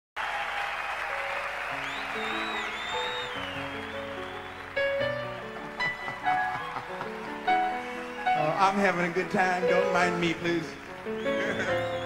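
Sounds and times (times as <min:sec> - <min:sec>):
audience applauding: 0:00.2 - 0:12.0.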